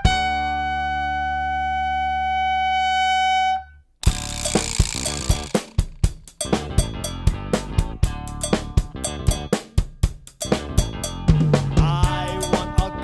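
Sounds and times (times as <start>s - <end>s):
trumpet long high note: 0.0s - 3.8s
drum kit steady beats: 4.5s - 13.0s.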